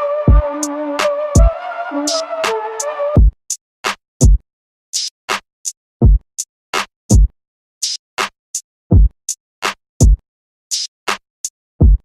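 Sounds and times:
deep kick drums: 0:03.2 - 0:03.4, 0:06.0 - 0:06.2, 0:07.1 - 0:07.3, 0:08.9 - 0:09.1, 0:11.8 - 0:12.0.

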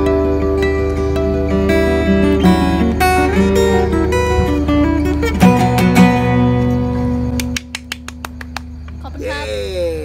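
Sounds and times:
acoustic guitar chord ringing: 0:00.0 - 0:07.6.

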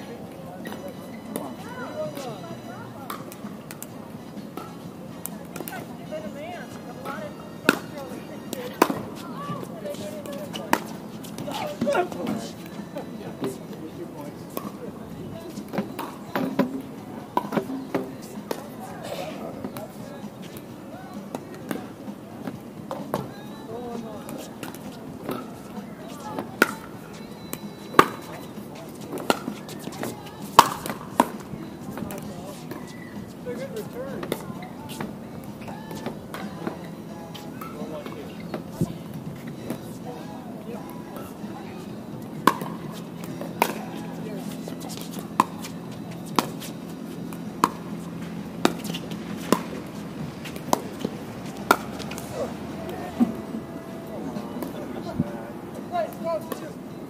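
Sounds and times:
people murmuring: 0:00.0 - 0:57.0.

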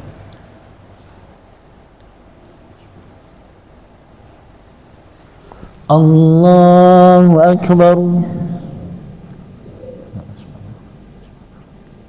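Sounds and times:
low steady rumble: 0:05.9 - 0:11.0.

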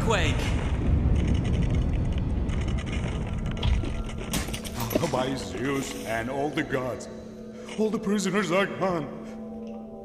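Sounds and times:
deep earthquake rumbling: 0:00.0 - 0:05.6
sharp rattles and clicks: 0:01.0 - 0:05.2.

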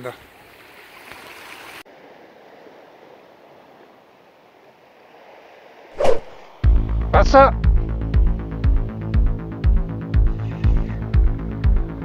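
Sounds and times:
music with heavy deep beat: 0:06.7 - 0:12.0.

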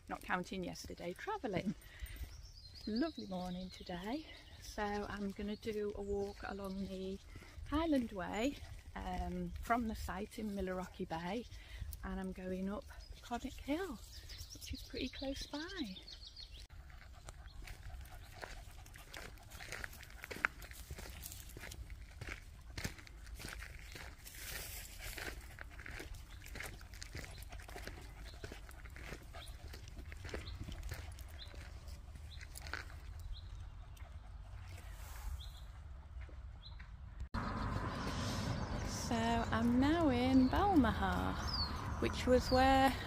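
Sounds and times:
outdoor background noise: 0:00.0 - 0:43.0
footsteps on gravel: 0:16.6 - 0:33.3, 0:36.2 - 0:43.0.

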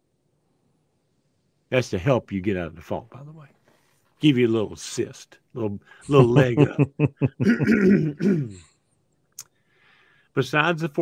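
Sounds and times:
man chuckling: 0:06.1 - 0:08.6
raspy throat clearing: 0:07.3 - 0:08.8.

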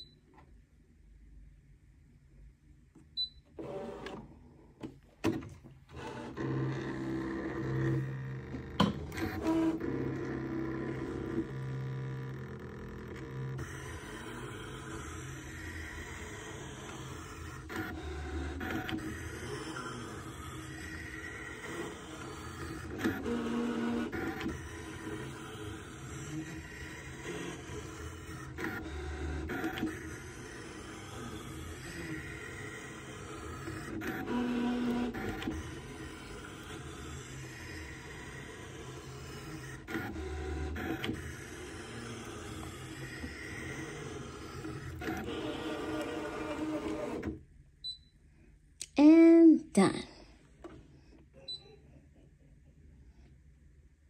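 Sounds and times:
cutting machine motors whirring: 0:03.6 - 0:04.2, 0:05.2 - 0:47.4.

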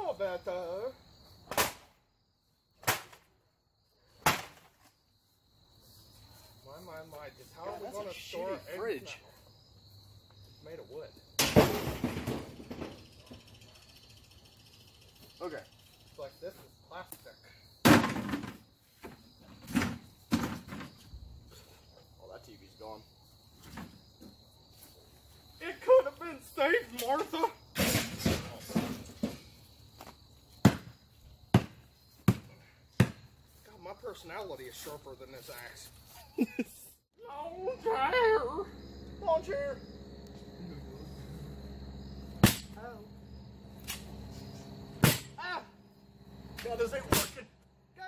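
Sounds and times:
crickets chirping: 0:00.0 - 0:48.0
metal folding chair slammed down: 0:27.8 - 0:29.1.

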